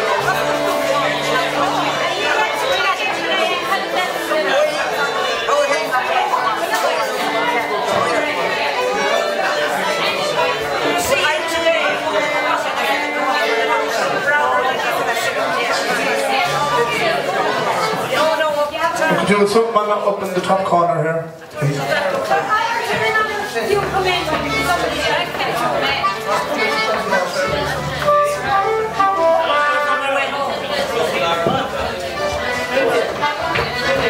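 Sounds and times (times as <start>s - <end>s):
held instrument notes: 0.0s - 18.7s, 23.0s - 34.0s
guitar: 0.0s - 19.3s, 21.5s - 34.0s
crowd chatting in a hall: 0.0s - 34.0s
folk band playing: 0.0s - 34.0s
people talking: 0.0s - 34.0s.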